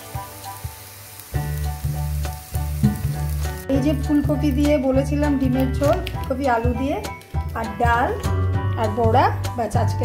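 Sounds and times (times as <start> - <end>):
food sizzling in oil: 0.0 - 10.0
music with a steady beat: 1.4 - 10.0.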